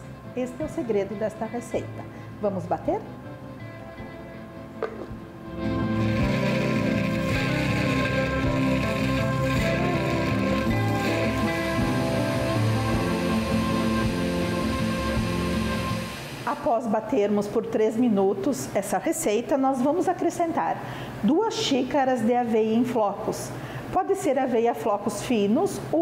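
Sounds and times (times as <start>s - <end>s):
blender running: 5.5s - 16.6s.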